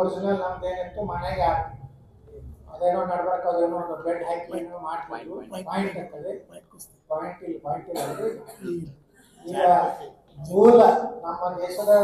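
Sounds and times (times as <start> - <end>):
man speaking into a microphone: 0.0 - 12.0.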